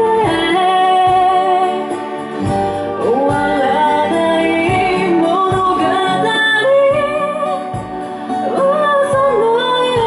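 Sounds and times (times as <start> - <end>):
instrumental accompaniment: 0.0 - 10.0
woman singing a slow ballad: 0.0 - 10.0.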